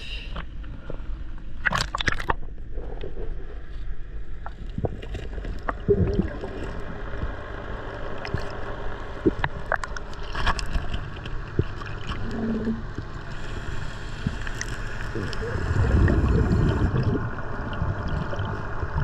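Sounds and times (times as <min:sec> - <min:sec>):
muffled underwater rumble: 0:00.0 - 0:19.0
sharp clicks underwater: 0:01.6 - 0:03.2, 0:08.1 - 0:13.2.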